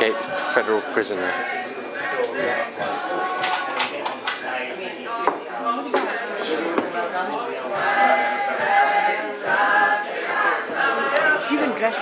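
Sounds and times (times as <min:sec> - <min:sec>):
voices singing together: 0:00.0 - 0:12.0.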